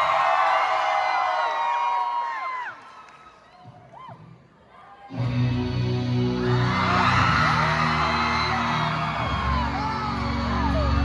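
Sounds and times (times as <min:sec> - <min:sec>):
crowd screaming and whooping: 0:00.0 - 0:11.0
rock band playing: 0:05.1 - 0:11.0.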